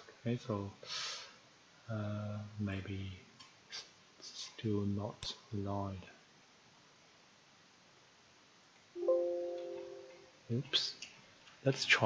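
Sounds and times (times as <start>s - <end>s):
two-note computer alert chime: 9.0s - 10.4s.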